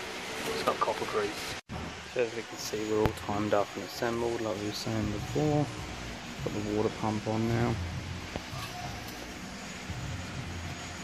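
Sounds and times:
low hum: 1.7s - 11.0s.

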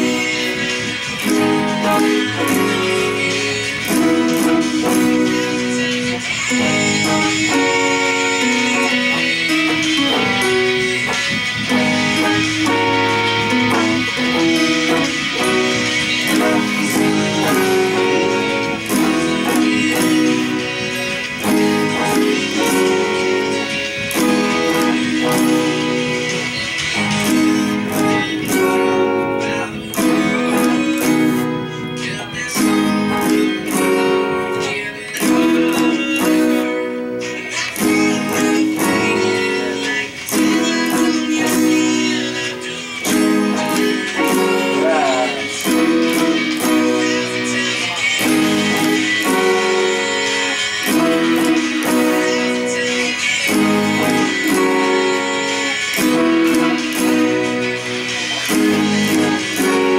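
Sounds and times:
acoustic guitar strumming chords: 0.0s - 59.9s
second guitar playing: 0.0s - 59.9s.

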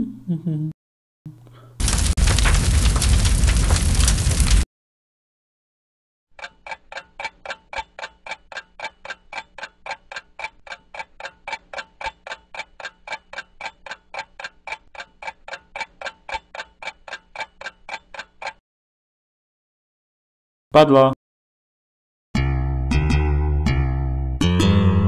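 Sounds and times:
clock ticking: 6.4s - 18.6s.

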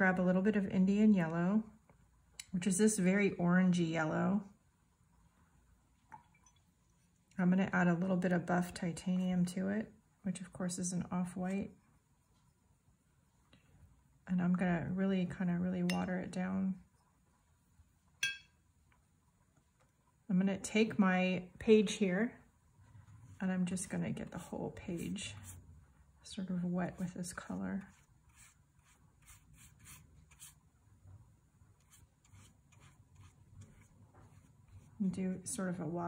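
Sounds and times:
paintbrush clinking on ceramic plate: 15.8s - 16.1s, 18.2s - 18.6s
brush swishing across paper: 24.2s - 25.8s, 26.6s - 30.7s, 31.7s - 35.1s.

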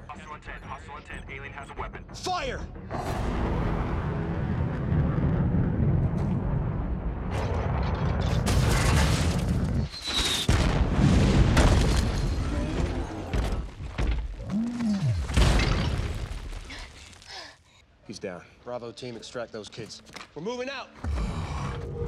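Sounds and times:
heavy booms and crashes: 2.9s - 9.9s, 10.5s - 12.5s
deep sustained rumble: 3.1s - 8.4s.

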